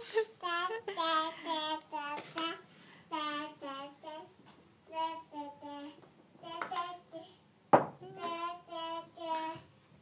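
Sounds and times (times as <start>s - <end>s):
toddler girl singing: 0.1s - 10.0s.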